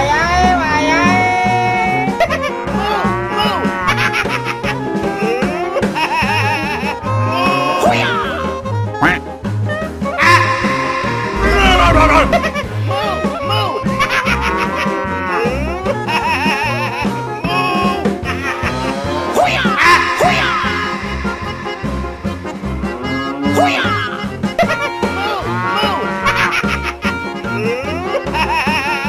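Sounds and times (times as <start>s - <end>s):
cow mooing: 0.1s - 1.9s, 10.2s - 12.6s.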